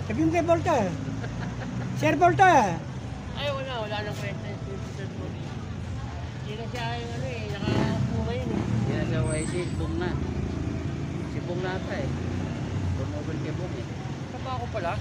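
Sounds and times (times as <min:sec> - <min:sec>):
low rumble of street traffic: 0:00.0 - 0:15.0
voices talking: 0:00.0 - 0:15.0.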